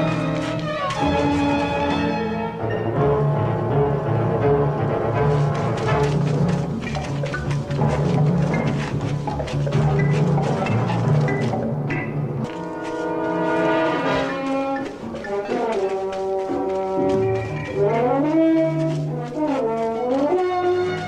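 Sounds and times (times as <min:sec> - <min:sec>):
orchestral film score: 0:00.0 - 0:21.0.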